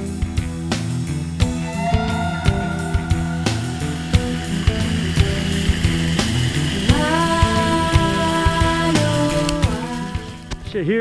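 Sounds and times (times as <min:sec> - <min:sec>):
background music with drum beat: 0:00.0 - 0:10.8.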